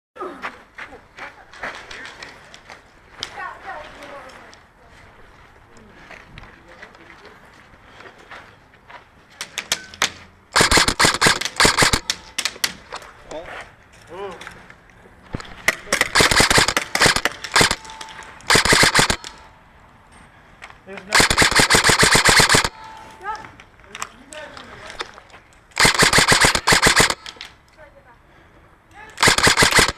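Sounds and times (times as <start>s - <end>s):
airsoft gun shots: 10.6s - 12.6s, 15.4s - 17.9s, 18.5s - 19.4s, 21.1s - 22.8s, 25.8s - 27.4s, 29.2s - 29.9s.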